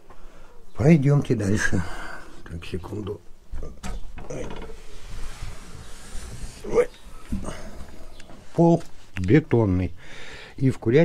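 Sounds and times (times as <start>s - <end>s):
door hinges creaking: 3.5s - 8.5s.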